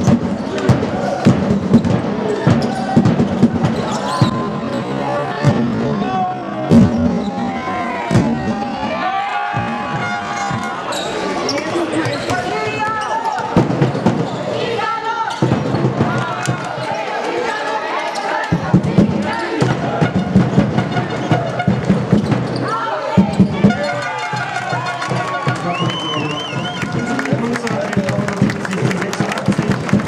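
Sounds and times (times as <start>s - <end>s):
basketball bouncing on hall floor: 0.0s - 4.7s, 6.7s - 7.4s, 8.1s - 8.6s, 9.5s - 14.5s, 15.3s - 16.7s, 18.5s - 24.8s
players shouting: 2.2s - 21.8s, 22.5s - 30.0s.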